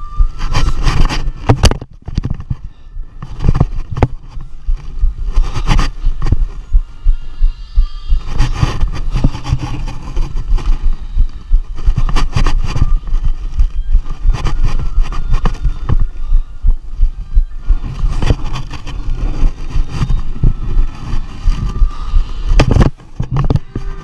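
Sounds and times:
knocks and thumps on camera: 0:00.2 - 0:02.6, 0:03.2 - 0:07.2, 0:08.2 - 0:23.8.

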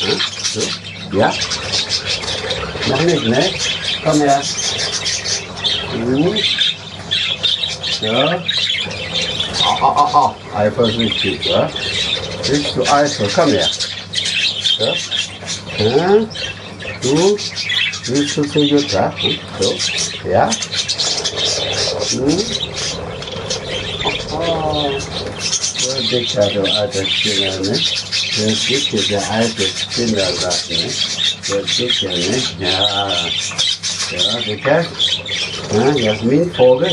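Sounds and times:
budgerigars chattering and squawking: 0:00.0 - 0:36.9.

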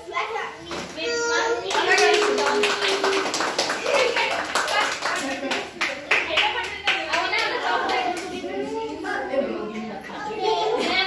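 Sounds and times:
group clapping: 0:01.6 - 0:08.6
children's excited voices: 0:07.2 - 0:11.0.

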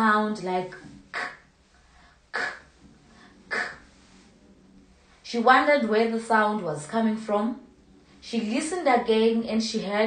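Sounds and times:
woman making k sounds: 0:00.6 - 0:01.5, 0:02.3 - 0:02.8, 0:03.5 - 0:04.0.

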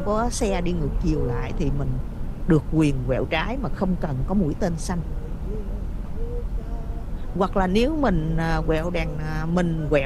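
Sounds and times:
car road and engine rumble: 0:00.0 - 0:10.0
faint wavering tones: 0:00.0 - 0:10.0.

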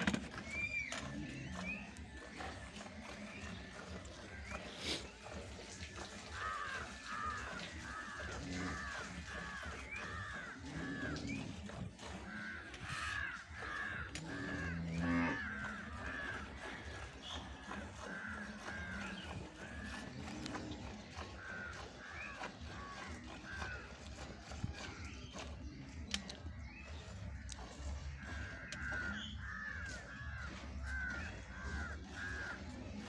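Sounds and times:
milk squirting into metal bucket: 0:00.0 - 0:33.0.

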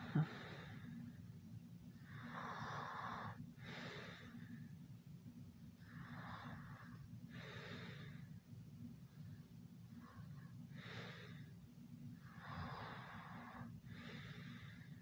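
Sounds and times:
heavy rasping breathing: 0:12.2 - 0:15.0.

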